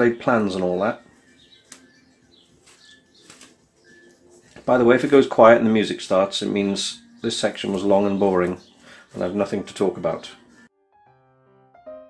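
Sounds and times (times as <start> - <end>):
cling film crinkling: 2.5 - 5.4.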